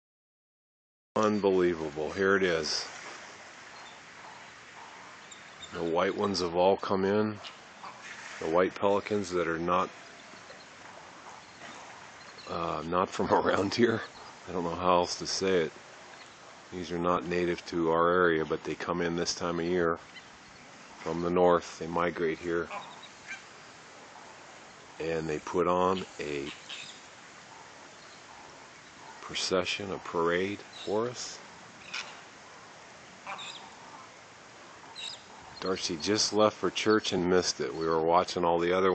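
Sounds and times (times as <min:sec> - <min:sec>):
faint outdoor background hiss: 0:01.2 - 0:38.9.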